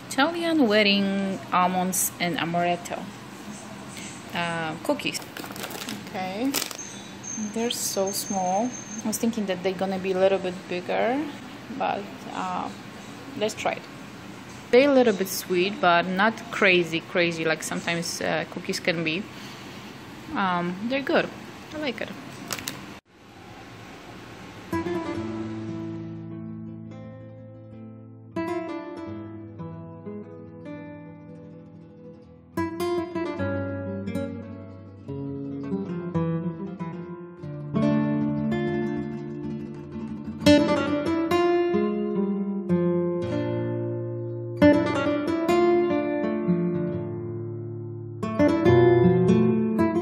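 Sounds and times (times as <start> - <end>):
acoustic guitar music: 24.6 - 50.0.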